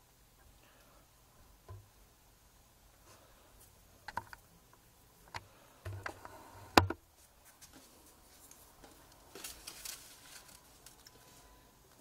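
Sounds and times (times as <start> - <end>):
faint scratchy rustle: 6.0 - 12.0.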